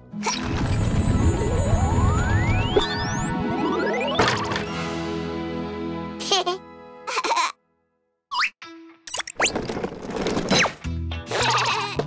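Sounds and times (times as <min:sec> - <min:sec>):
warbling tone: 0:00.8 - 0:04.7.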